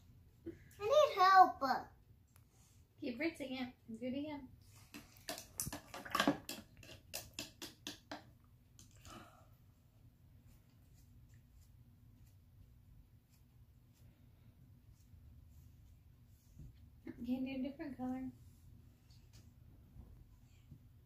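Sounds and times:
paintbrush tapping in cup of water: 4.9s - 8.3s
brush wiped on tissue: 10.4s - 17.0s.

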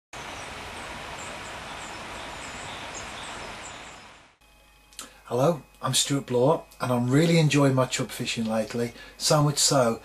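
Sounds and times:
small birds chirping: 0.2s - 4.3s
steady background hiss: 0.2s - 10.0s.

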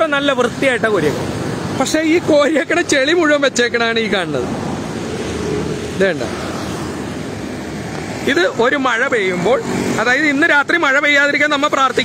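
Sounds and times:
man speaking: 0.0s - 4.6s, 5.8s - 6.5s, 8.2s - 12.0s
road traffic hiss: 0.0s - 12.0s.

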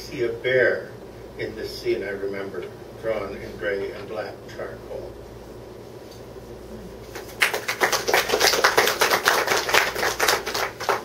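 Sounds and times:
audience applauding: 7.1s - 11.0s.

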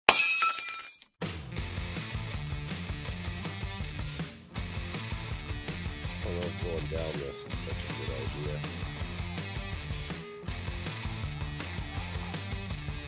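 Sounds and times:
glass shattering: 0.1s - 1.2s
background music with steady beat: 1.2s - 13.0s.

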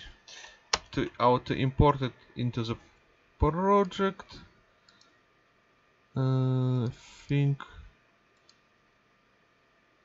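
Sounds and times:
computer mouse click: 4.8s - 5.2s, 8.4s - 8.6s.

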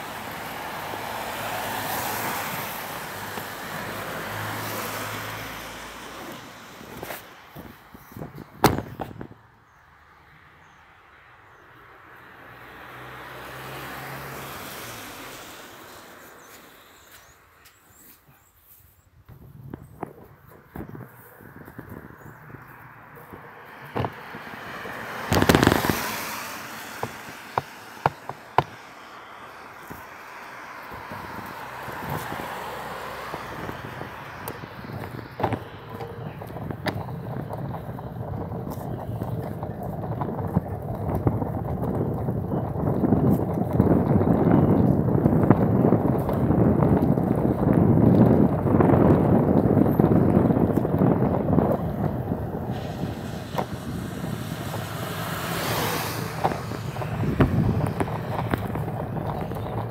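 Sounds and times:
vehicle moving on wet road: 0.0s - 7.5s, 12.0s - 17.5s, 21.0s - 59.9s.

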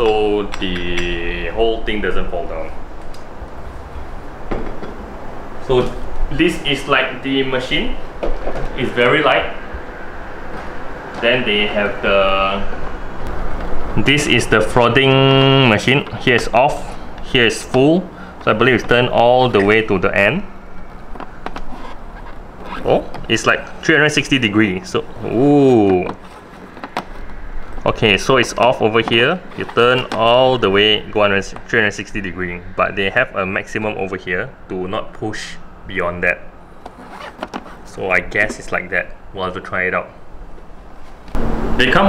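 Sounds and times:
low handling rumble: 0.0s - 42.0s
scraping: 20.9s - 30.8s, 36.8s - 38.7s.

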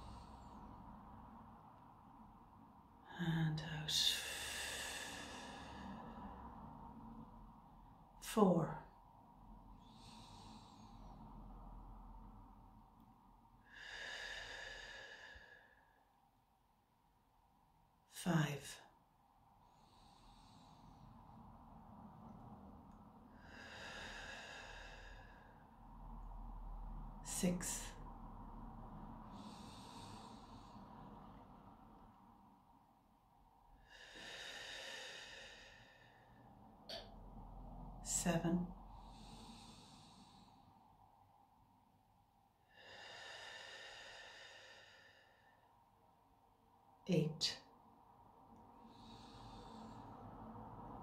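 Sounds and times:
woman breathing deeply: 0.0s - 3.1s, 3.9s - 16.6s, 18.9s - 46.4s, 47.6s - 51.0s.

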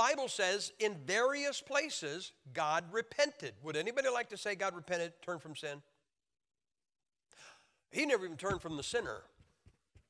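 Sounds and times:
man speaking: 0.0s - 5.9s, 7.9s - 9.4s.

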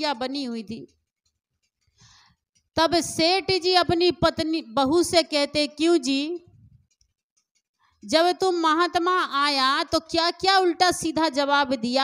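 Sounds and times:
woman speaking: 0.0s - 0.9s, 2.8s - 6.5s, 8.0s - 12.0s.

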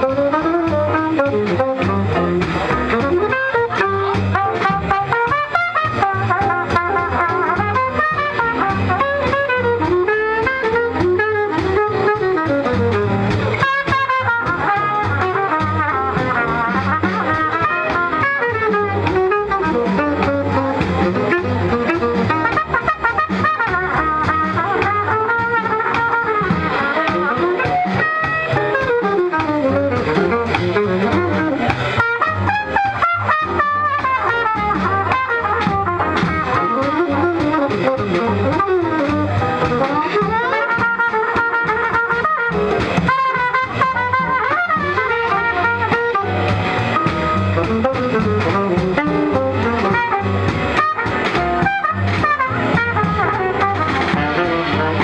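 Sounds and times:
drum kit swing beat: 0.0s - 55.0s
plucked double bass: 0.0s - 55.0s
tenor saxophone: 0.0s - 55.0s
trumpet: 0.0s - 55.0s.

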